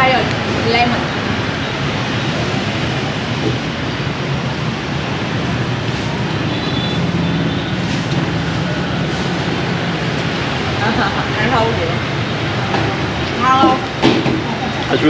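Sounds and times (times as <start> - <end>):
motorbikes passing: 0.0 - 15.0.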